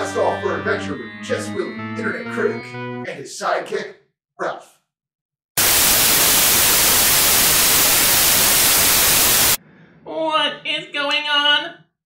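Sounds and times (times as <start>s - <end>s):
television static hiss: 5.6s - 9.6s.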